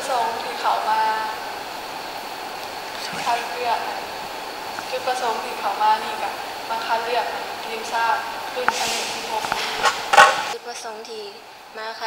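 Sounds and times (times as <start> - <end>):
background hiss: 0.0 - 12.0
faint high whine: 0.0 - 12.0
girl speaking: 3.0 - 3.9, 10.6 - 12.0.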